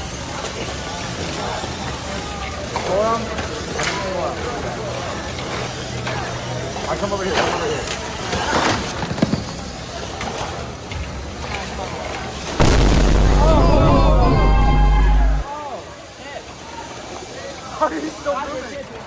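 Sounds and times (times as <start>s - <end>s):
indistinct voices: 12.6s - 15.5s
loud low rumbling: 12.6s - 15.5s
people shouting: 13.1s - 15.5s.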